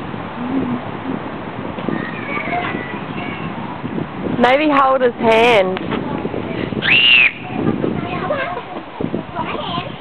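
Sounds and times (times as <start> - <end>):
child squealing: 6.8 - 7.4.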